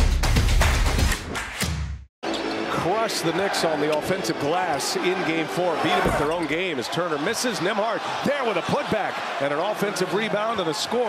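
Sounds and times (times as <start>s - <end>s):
arena crowd noise: 2.2s - 11.0s.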